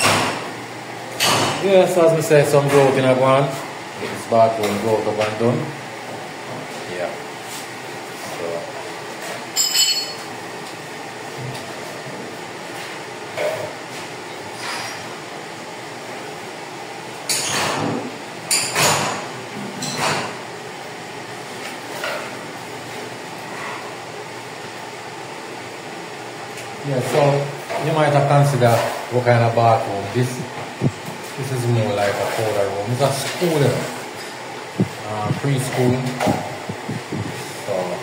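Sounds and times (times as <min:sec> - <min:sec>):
ringing tile clink: 0:09.6 - 0:10.2.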